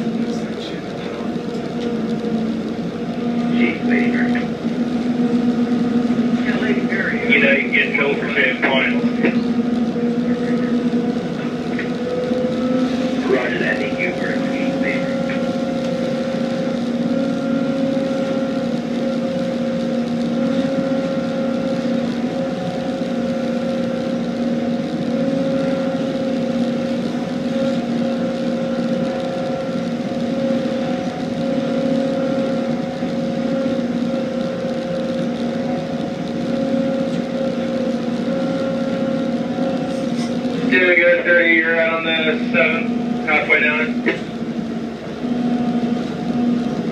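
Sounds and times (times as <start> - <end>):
diesel engine drone: 0.0 - 46.9.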